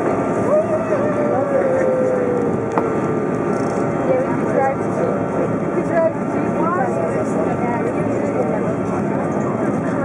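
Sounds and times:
airliner engine cabin noise: 0.0 - 10.0
passengers talking: 0.0 - 10.0.

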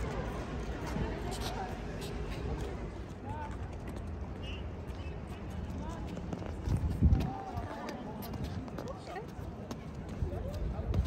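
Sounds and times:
people talking: 0.0 - 3.7, 7.0 - 11.0.

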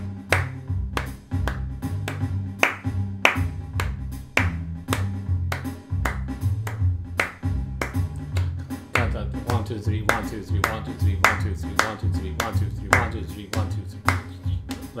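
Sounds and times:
hand claps: 0.0 - 15.0
music with low bass line: 0.0 - 15.0.

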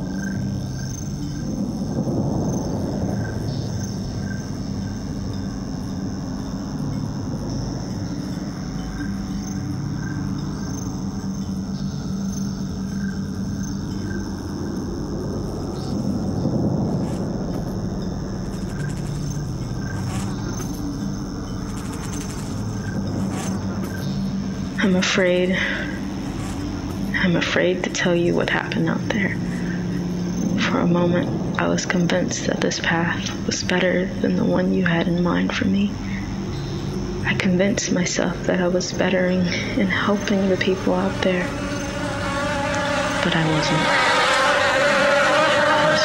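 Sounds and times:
ambient background music: 0.0 - 46.0.

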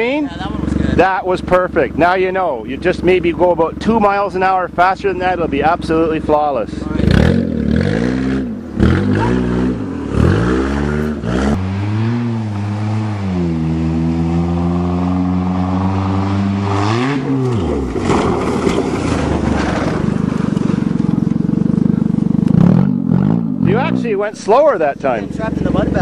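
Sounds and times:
car engine revving: 0.0 - 26.0
rough rushing rattling noise: 17.4 - 26.0.

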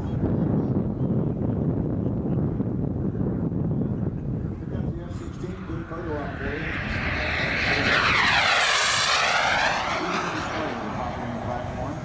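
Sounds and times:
model jet turbine whine: 4.6 - 12.0.

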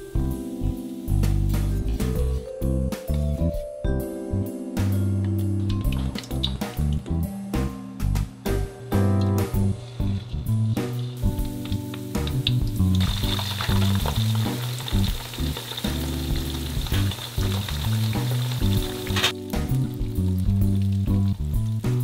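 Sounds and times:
deep-frying crackling sizzle: 0.0 - 2.7, 5.7 - 22.0
background music: 0.0 - 22.0.

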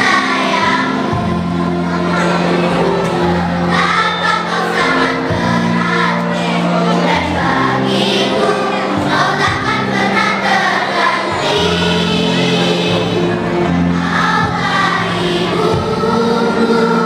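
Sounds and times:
children's choir singing: 0.0 - 17.0.

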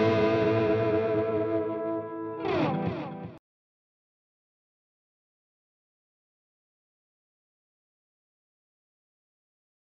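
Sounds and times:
distorted electric guitar lead: 0.0 - 3.4.

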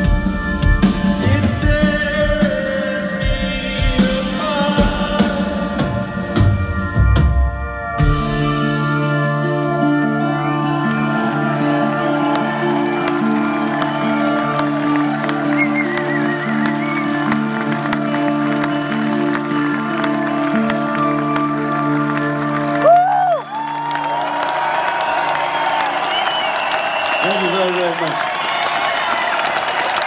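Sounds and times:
live band keyboard chords: 0.0 - 30.0
crowd cheering and whistling: 5.8 - 30.0
crowd applauding: 9.1 - 30.0.

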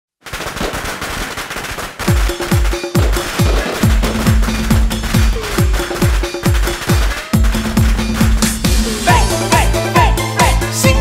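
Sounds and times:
firecrackers crackling: 0.2 - 9.7.

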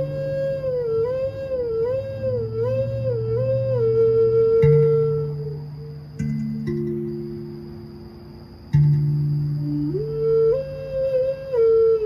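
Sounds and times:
flute sliding notes: 0.0 - 7.6, 8.9 - 12.0
tongue drum ringing: 4.6 - 10.2.

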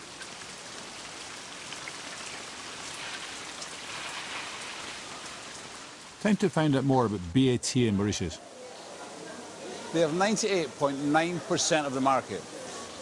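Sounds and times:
rain falling: 0.0 - 13.0.

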